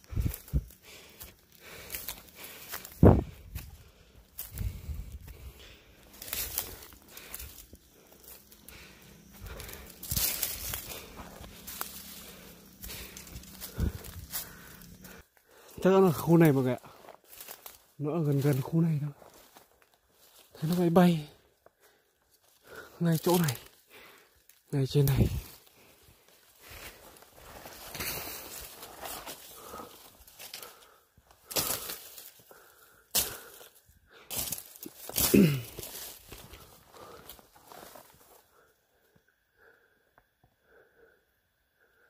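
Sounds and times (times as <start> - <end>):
footsteps through dry brush: 0.0 - 38.7.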